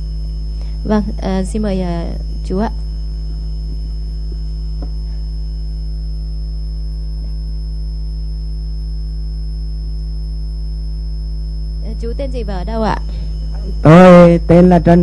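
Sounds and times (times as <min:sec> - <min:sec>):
electrical mains hum: 0:00.0 - 0:15.0
thin high tone: 0:11.4 - 0:15.0.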